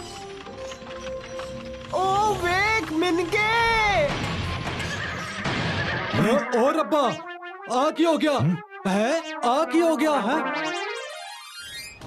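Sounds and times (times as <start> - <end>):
cartoon horse whinnying: 4.8 - 6.7.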